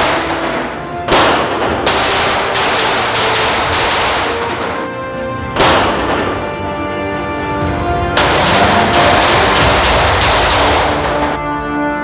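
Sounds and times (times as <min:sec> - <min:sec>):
handgun shots: 0:00.0 - 0:05.0, 0:05.6 - 0:06.5, 0:08.2 - 0:11.4
background music: 0:00.0 - 0:12.0.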